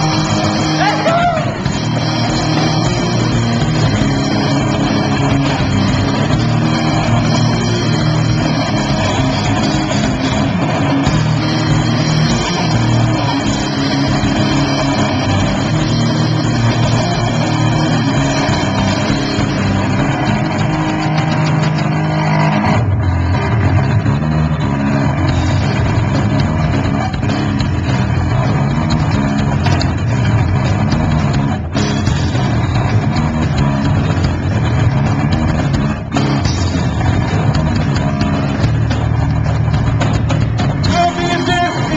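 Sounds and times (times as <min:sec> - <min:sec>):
live band playing loud music: 0:00.0 - 0:41.9.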